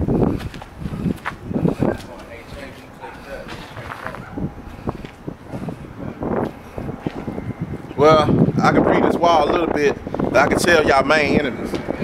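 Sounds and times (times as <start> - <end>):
wind gusting on microphone: 0.0 - 12.0.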